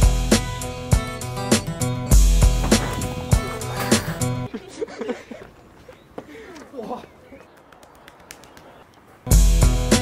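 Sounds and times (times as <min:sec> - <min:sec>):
birds calling: 0:01.2 - 0:10.0.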